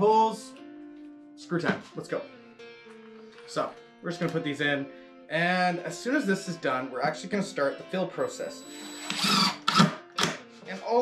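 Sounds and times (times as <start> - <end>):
impact driver driving a screw: 8.7 - 10.4.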